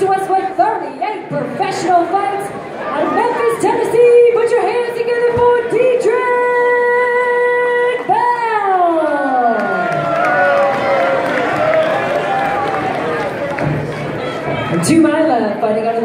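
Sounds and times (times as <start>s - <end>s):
woman announcer calling over pa: 0.0s - 9.9s
crowd noise: 0.0s - 16.0s.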